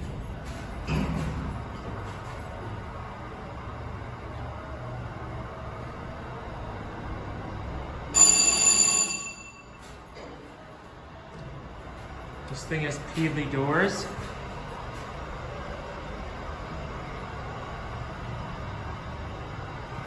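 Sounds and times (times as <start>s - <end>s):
elevator low hum: 0.0s - 20.0s
elevator arrival bell: 8.1s - 10.2s.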